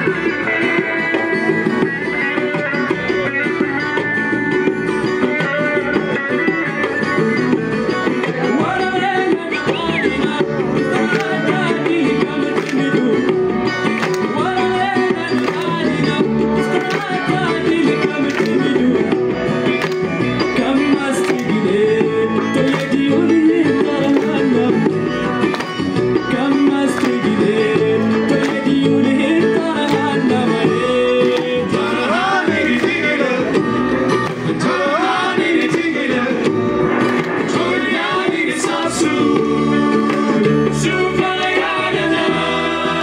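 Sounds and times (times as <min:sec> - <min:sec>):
acoustic guitar: 0:00.0 - 0:43.0
banjo: 0:00.0 - 0:43.0
electric guitar: 0:00.0 - 0:43.0
hand drum: 0:00.0 - 0:43.0.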